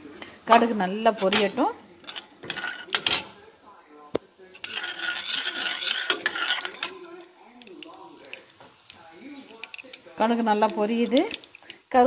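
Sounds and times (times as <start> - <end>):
frying hiss: 0.0 - 12.0
metal spoon clinking on pan: 0.6 - 3.4, 4.6 - 7.1.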